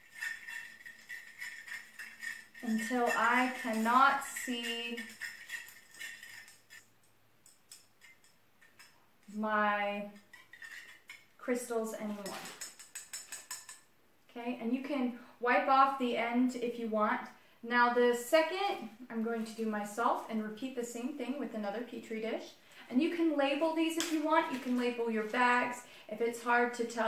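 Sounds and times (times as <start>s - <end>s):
spoon scraping plastic dish: 0.0s - 6.8s, 10.2s - 11.3s, 12.0s - 13.8s
plastic spoon clicking on dish: 12.5s - 13.8s.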